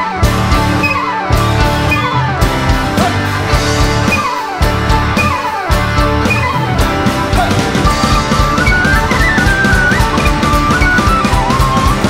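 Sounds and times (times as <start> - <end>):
guitar: 0.0 - 12.0
lead melody line: 0.0 - 12.0
steady drum beat: 0.0 - 12.0.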